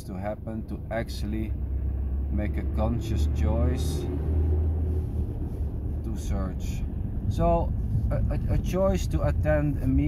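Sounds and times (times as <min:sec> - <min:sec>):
low rumble inside car: 0:00.0 - 0:10.0.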